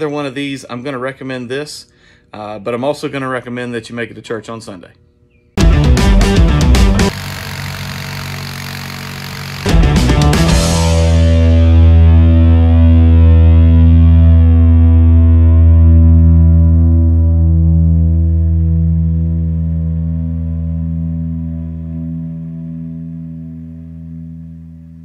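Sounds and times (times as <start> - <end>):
distorted electric guitar chord: 5.6 - 25.0.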